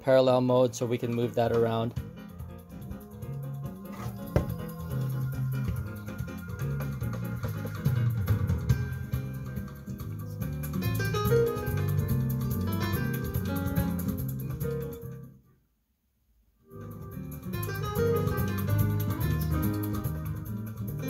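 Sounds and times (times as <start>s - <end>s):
bass-heavy music through speakers: 1.1s - 15.0s, 16.8s - 21.0s.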